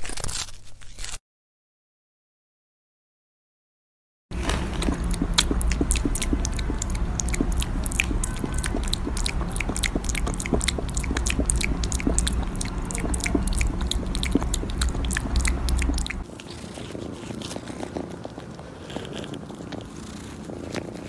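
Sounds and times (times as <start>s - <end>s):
low rumble: 4.3s - 16.2s
kitten chewing: 4.3s - 21.0s
kitten licking and smacking: 4.4s - 21.0s.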